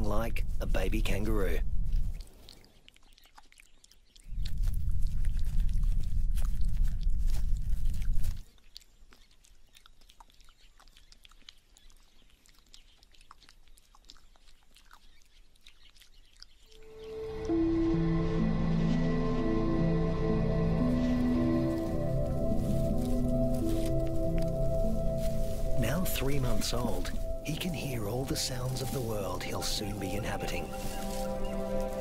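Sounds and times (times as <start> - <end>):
wet licking clicks and smacks: 1.9 - 16.9
music: 16.8 - 32.0
low rumble: 17.1 - 32.0.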